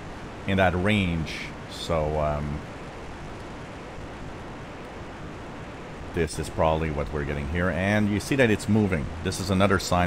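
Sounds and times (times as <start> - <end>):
digital radio hiss: 0.0 - 2.7.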